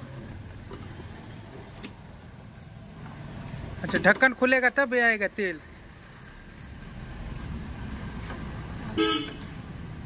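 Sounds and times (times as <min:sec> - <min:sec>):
passing motor vehicle rumble: 0:05.3 - 0:10.0.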